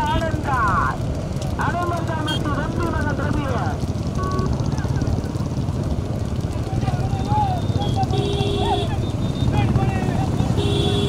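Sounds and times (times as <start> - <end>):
motorbike engines rumbling: 0.0 - 11.0
men shouting: 6.7 - 11.0.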